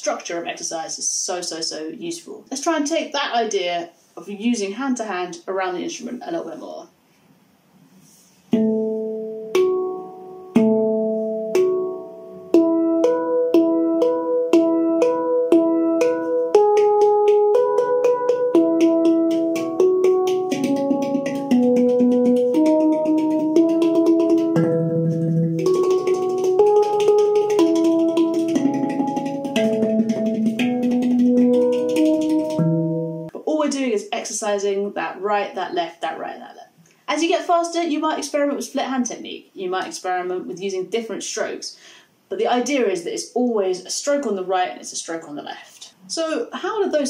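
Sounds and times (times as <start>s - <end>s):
handpan strokes: 8.2s - 33.3s.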